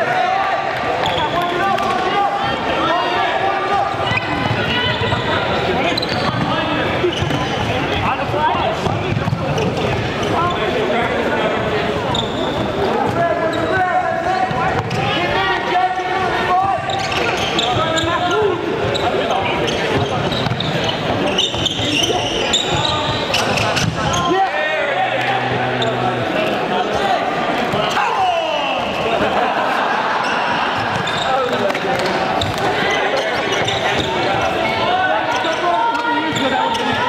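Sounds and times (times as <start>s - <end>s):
players shouting in hall: 0.0s - 6.0s, 21.8s - 37.0s
sneakers squeaking: 1.0s - 1.6s, 3.9s - 29.3s, 30.2s - 37.0s.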